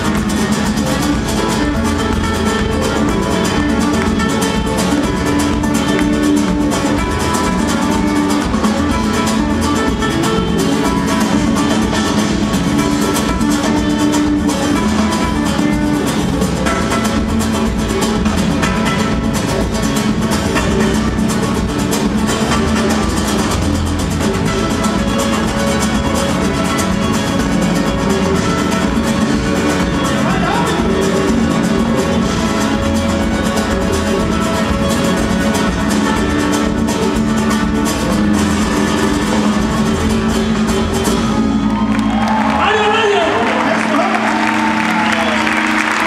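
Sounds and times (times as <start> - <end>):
bass guitar: 0.0 - 46.0
drums: 0.0 - 46.0
live band playing rumba: 0.0 - 46.0
strummed acoustic guitars: 0.0 - 46.0.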